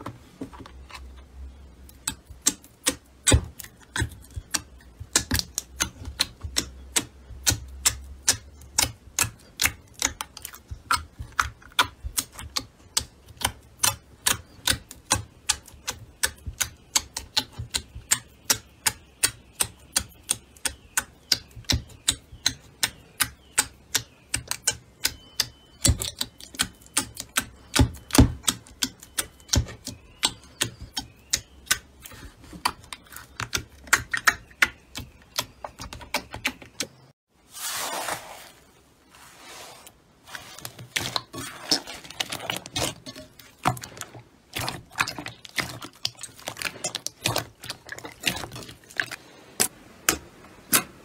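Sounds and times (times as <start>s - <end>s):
slime clicking and popping: 1.9s - 31.8s, 41.0s - 50.9s.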